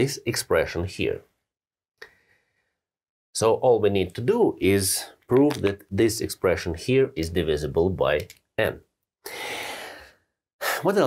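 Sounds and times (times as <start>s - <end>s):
man speaking: 0.0s - 1.3s, 3.4s - 8.9s, 10.6s - 11.0s.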